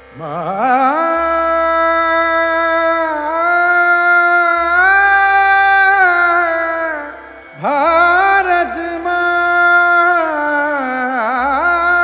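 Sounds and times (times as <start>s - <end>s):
person singing long note: 0.0s - 12.0s.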